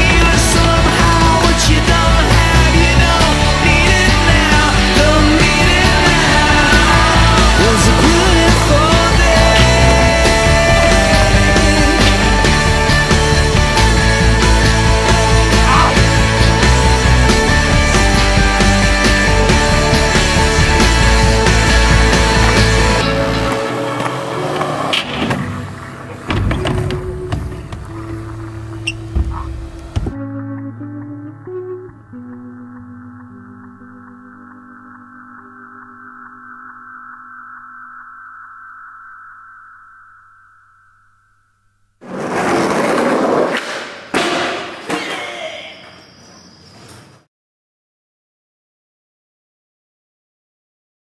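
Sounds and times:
skateboard wheels rolling on paving: 21.5s - 30.2s, 42.0s - 44.1s.

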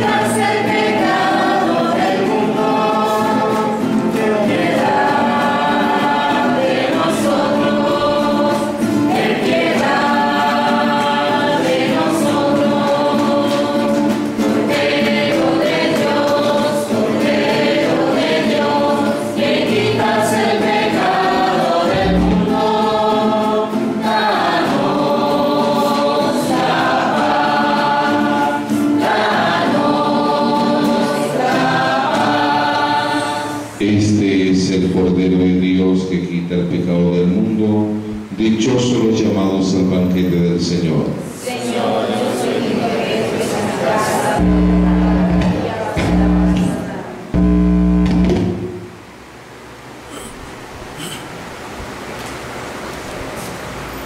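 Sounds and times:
church choir singing a hymn: 0.0s - 37.3s, 38.4s - 48.5s.

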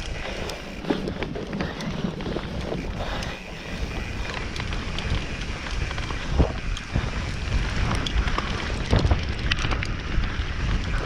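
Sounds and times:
bike knocking and rattling: 0.0s - 11.0s
bike tyres rumbling on dirt: 0.0s - 11.0s
wind on microphone: 0.0s - 11.0s.

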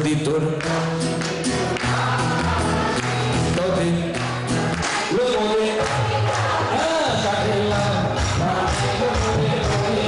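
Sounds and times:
man singing into microphone: 0.0s - 1.3s, 3.4s - 4.3s, 5.0s - 10.0s
musical accompaniment: 0.0s - 10.0s.

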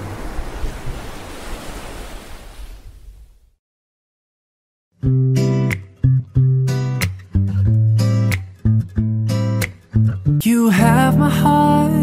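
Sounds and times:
ocean surf rushing: 0.0s - 3.2s.

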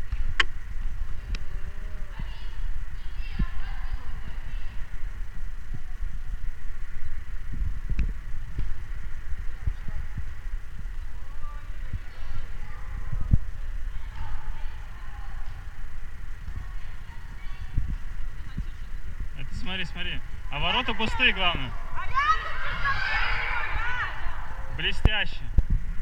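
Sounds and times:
low rumble: 0.0s - 26.0s
faint echoing shouts: 11.1s - 25.4s.

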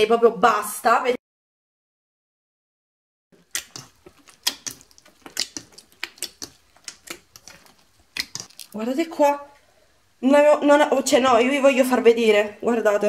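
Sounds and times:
slime squelching and popping: 3.4s - 9.0s.

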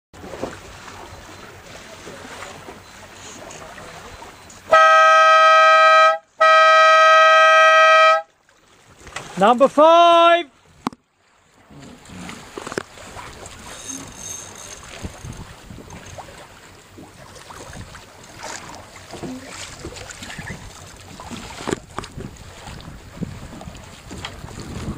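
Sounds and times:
air horn blasts: 4.7s - 8.3s
wind and water hiss: 8.4s - 24.9s.

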